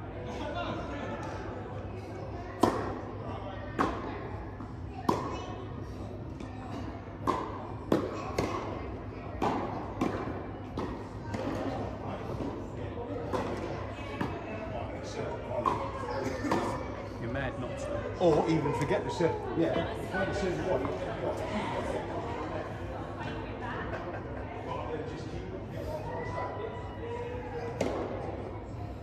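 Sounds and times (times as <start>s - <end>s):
tennis ball bouncing on court: 7.2s - 8.8s
rackets striking tennis ball: 7.2s - 11.8s.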